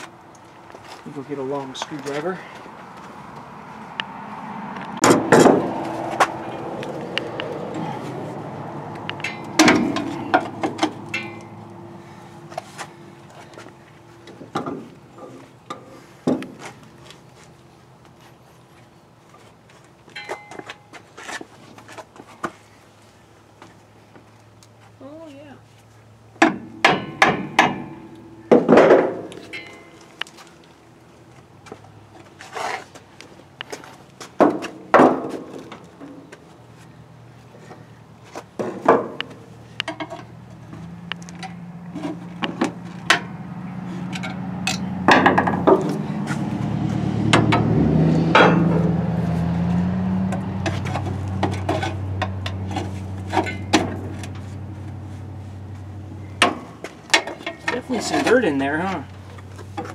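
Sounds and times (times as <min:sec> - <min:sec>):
hammer striking metal drum: 0:26.4 - 0:29.1.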